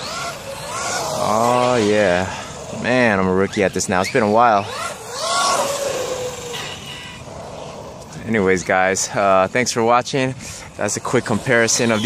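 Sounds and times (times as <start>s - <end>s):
electric rc car motor whine: 0.0s - 8.3s, 10.7s - 12.0s
tyre and wind hiss: 6.9s - 12.0s.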